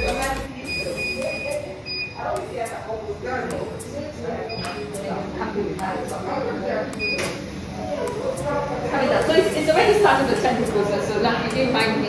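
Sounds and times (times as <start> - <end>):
quiet talking: 0.0 - 12.0.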